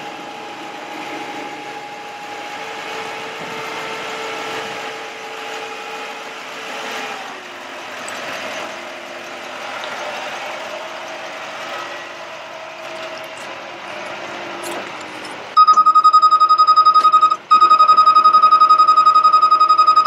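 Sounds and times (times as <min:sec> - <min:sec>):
truck engine running: 0:00.0 - 0:15.6
hydraulic whine: 0:00.0 - 0:16.0.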